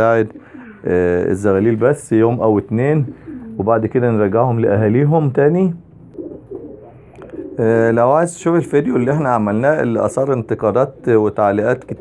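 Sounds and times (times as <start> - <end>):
pigeons cooing: 0.0 - 4.6, 6.1 - 12.0
man speaking: 0.0 - 5.9, 7.6 - 12.0.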